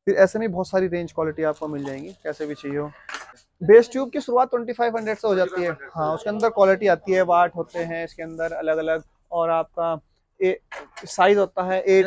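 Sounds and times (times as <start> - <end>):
man speaking: 0.0 - 3.0, 3.6 - 12.0.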